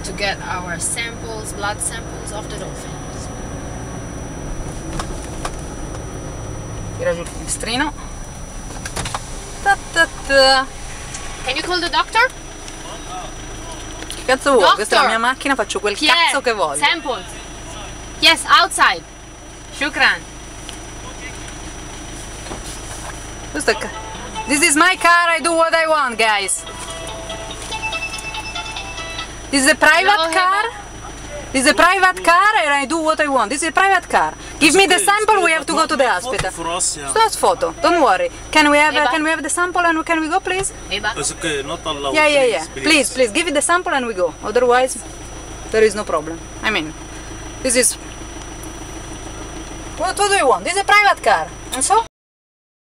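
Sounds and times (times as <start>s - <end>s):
car engine idling: 0.0s - 52.1s.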